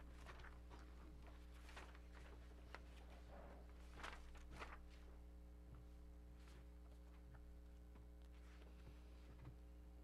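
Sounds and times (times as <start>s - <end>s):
steady electrical hum: 0.0s - 10.0s
papers rustling: 3.8s - 5.1s.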